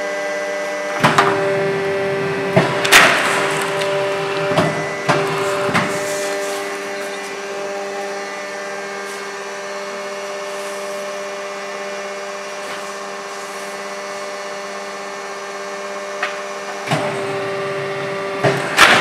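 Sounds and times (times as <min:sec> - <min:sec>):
hydraulic pump humming: 0:00.6 - 0:19.0.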